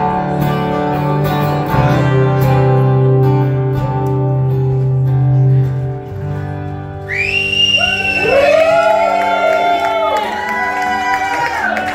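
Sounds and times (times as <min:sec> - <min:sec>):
audience whistling and whooping: 0:07.0 - 0:11.9.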